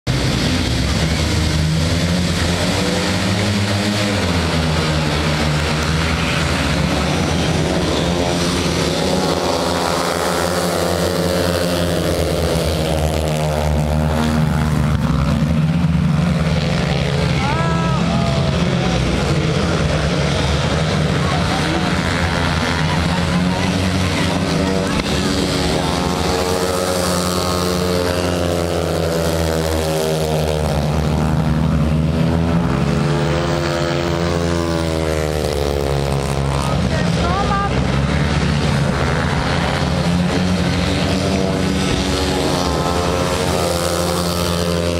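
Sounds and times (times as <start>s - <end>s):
motorcycles racing: 0.0s - 44.9s.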